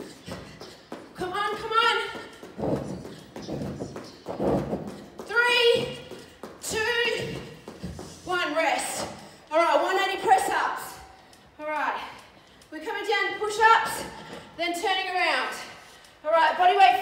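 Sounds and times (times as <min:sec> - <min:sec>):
woman speaking: 0:01.2 - 0:02.4, 0:05.2 - 0:07.6, 0:08.2 - 0:17.0.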